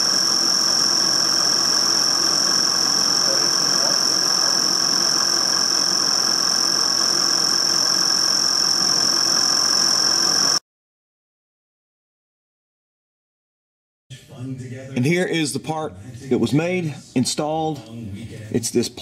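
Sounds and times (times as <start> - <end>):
high-pitched cutting whine: 0.0 - 10.6
milling machine cutting metal: 0.0 - 10.6.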